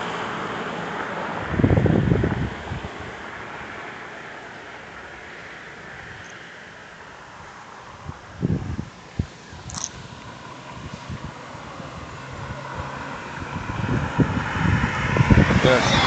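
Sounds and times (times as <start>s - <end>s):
car approaching on road: 0.0s - 16.0s.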